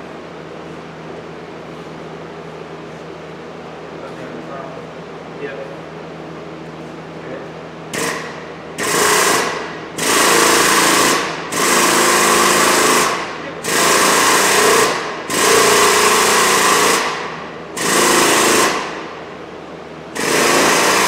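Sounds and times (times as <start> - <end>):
hydraulic pump buzzing: 7.9 - 19.3, 20.1 - 21.0.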